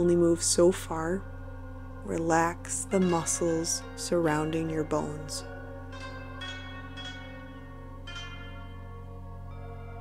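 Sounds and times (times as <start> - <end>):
low drone: 0.0 - 10.0
plucked string notes: 2.0 - 10.0
struck notes: 2.1 - 10.0.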